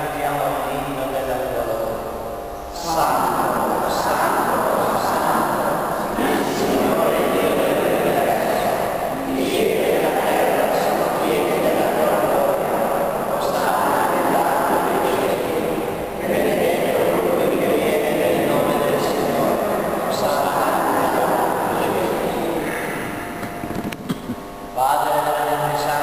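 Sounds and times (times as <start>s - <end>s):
voices reciting a prayer: 0.0s - 23.8s, 24.8s - 26.0s.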